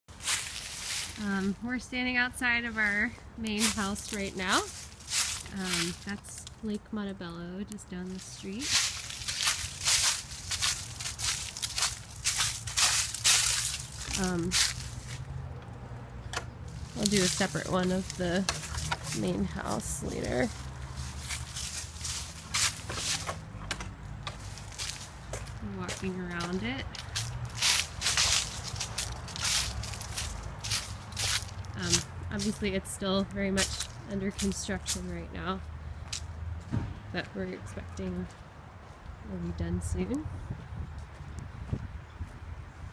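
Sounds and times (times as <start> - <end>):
footsteps crunching on rough ground: 0.1 - 1.6, 2.7 - 6.7, 8.0 - 15.5, 16.6 - 39.2, 40.6 - 42.9
steady low rumble: 1.1 - 35.6.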